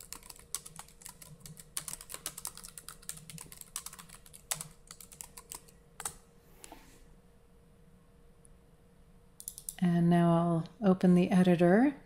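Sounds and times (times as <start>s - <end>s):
typing on computer keyboard: 0.0s - 6.2s, 9.4s - 9.8s.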